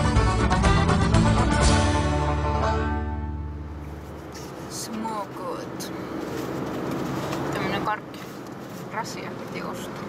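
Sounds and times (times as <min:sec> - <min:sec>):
background music held chord: 0:00.0 - 0:03.8.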